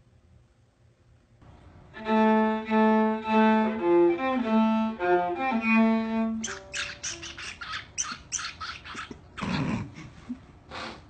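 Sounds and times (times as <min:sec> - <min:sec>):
bird squawking raspily: 0:06.4 - 0:09.3.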